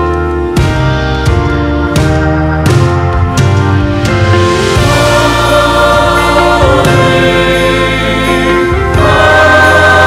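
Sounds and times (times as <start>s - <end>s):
church choir singing: 4.4s - 10.0s.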